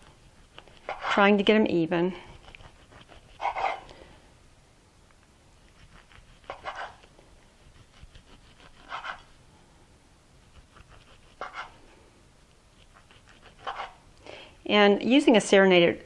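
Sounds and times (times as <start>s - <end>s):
serrated knife sawing through tortilla: 0.0s - 1.4s, 2.2s - 3.9s, 5.7s - 9.4s, 10.4s - 11.9s, 12.8s - 14.0s.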